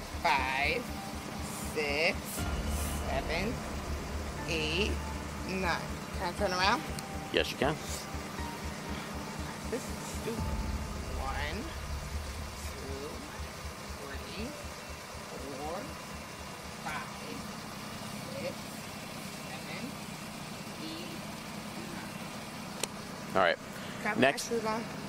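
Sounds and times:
car engine idling: 0:00.0 - 0:25.0.

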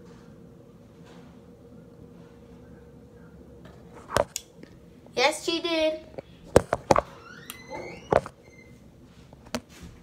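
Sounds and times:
squeak rising in pitch: 0:07.2 - 0:08.8.

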